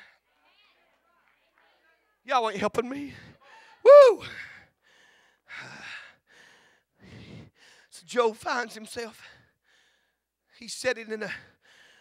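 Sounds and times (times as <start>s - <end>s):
man breathing into microphone: 4.8s - 7.9s.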